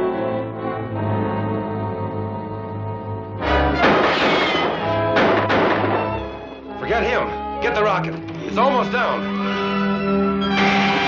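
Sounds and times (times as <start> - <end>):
dramatic orchestral score: 0.0 - 11.0.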